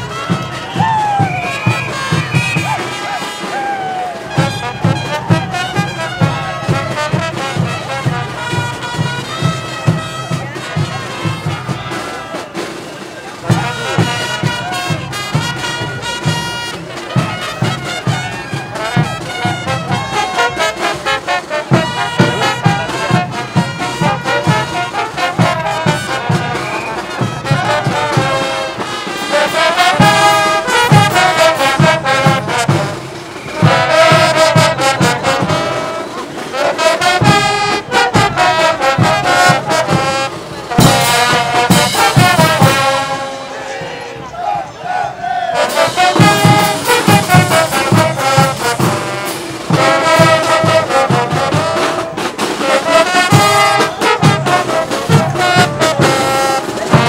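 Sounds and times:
brass band playing: 0:00.0 - 0:57.0
marching drums and cymbals: 0:00.0 - 0:57.0.

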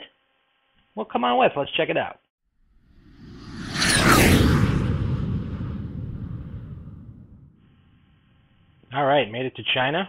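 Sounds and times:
whoosh low rumble: 0:02.9 - 0:07.6.

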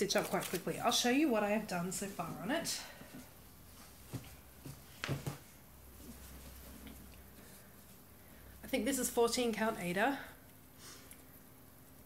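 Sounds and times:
faint low hum: 0:00.0 - 0:12.0
handling knocks and rustles: 0:03.8 - 0:07.1.

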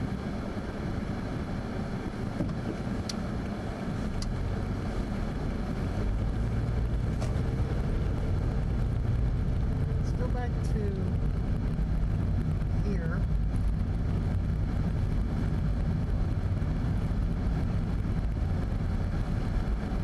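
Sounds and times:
car road and engine noise: 0:00.0 - 0:20.0.

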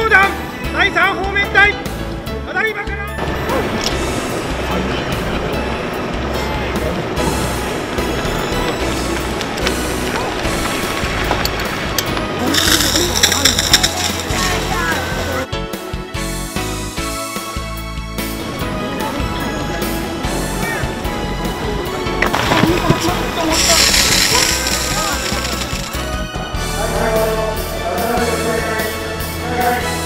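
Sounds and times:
background music: 0:00.0 - 0:30.0
fire pump running: 0:23.4 - 0:26.2.

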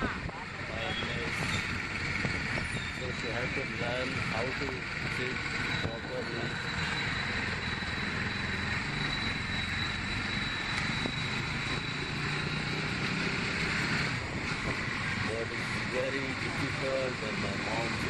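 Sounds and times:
high steady whine: 0:00.0 - 0:13.3
motorcycle engine running: 0:00.0 - 0:18.0.

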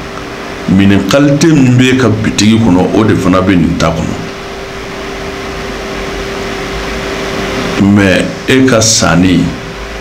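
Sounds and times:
even hiss: 0:00.0 - 0:10.0
faint steady hum: 0:00.0 - 0:10.0.

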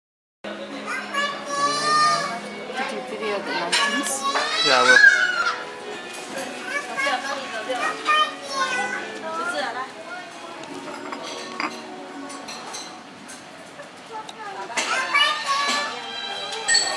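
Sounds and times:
background music: 0:00.5 - 0:13.9, 0:14.6 - 0:16.9
general chatter: 0:00.5 - 0:16.9
children's high voices: 0:00.8 - 0:02.4, 0:03.2 - 0:05.7, 0:06.6 - 0:10.3, 0:14.1 - 0:16.6
tableware clinking: 0:03.7 - 0:04.5, 0:10.7 - 0:13.4, 0:14.8 - 0:16.9.

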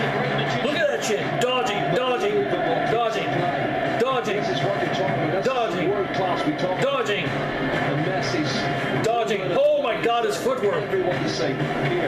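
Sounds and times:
man talking: 0:00.2 - 0:12.0.

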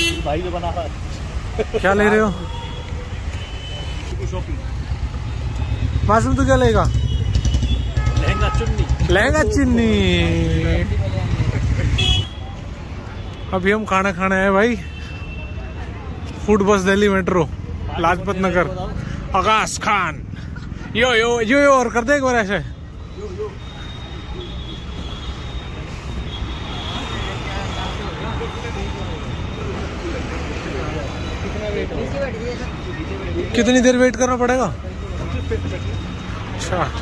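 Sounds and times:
street traffic rumble: 0:00.0 - 0:37.0.

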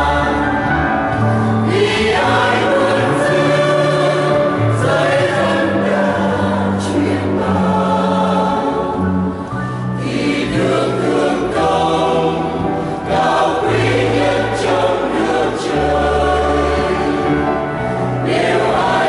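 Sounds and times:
mixed choir singing a hymn: 0:00.0 - 0:19.0.

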